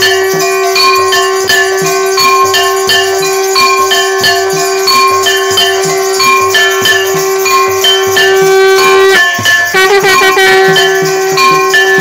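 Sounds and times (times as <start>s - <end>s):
bell-like melody: 0.0s - 12.0s
drum beat: 0.0s - 12.0s.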